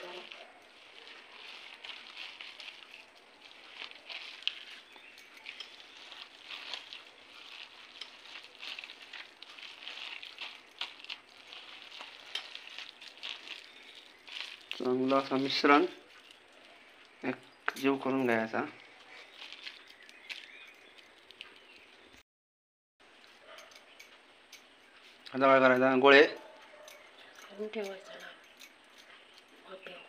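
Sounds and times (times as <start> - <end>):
hands squishing wet mixture: 0.0 - 22.1.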